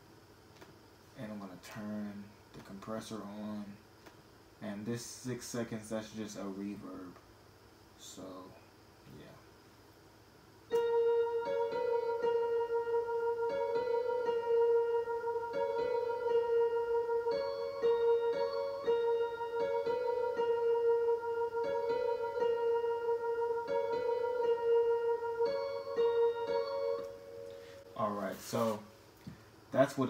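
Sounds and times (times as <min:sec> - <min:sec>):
sustained synth note: 0:10.7 - 0:28.6
piano melody: 0:10.7 - 0:28.9.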